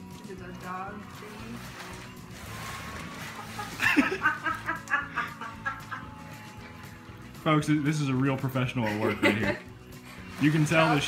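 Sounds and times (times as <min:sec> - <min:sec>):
laughter in quick bursts: 0:03.3 - 0:06.4, 0:08.8 - 0:09.7.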